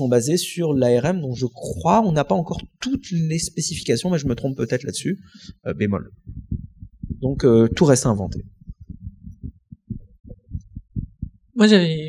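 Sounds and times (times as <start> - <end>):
microphone handling thumps: 4.2 - 4.6, 5.3 - 11.6.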